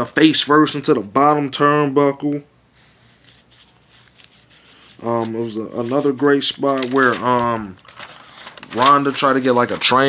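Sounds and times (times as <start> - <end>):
low room hum: 0.0 - 10.0
faint rustling: 2.8 - 10.0.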